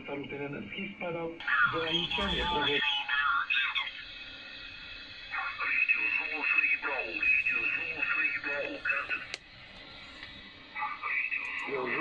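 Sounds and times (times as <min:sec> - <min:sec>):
radio band hiss: 0:00.0 - 0:12.0
voice on shortwave radio: 0:05.3 - 0:09.3.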